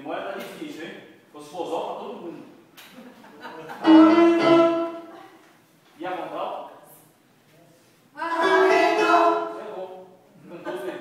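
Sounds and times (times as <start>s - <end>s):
mixed choir singing: 8.3s - 9.6s.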